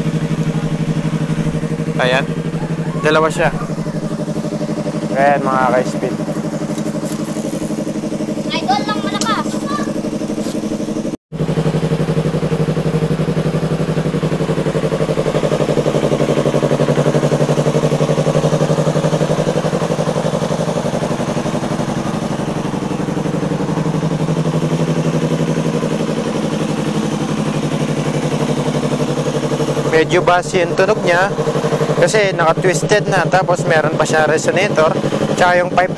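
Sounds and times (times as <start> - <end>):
motorcycle engine idling: 0.0 - 35.9.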